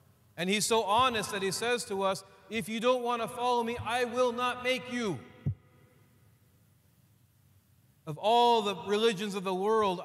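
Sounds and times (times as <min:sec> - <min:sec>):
man speaking: 0:00.4 - 0:05.3, 0:08.1 - 0:10.0.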